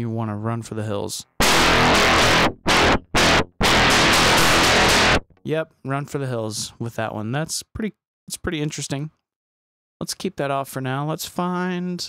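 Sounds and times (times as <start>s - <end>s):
distorted electric guitar chords: 1.4s - 5.3s.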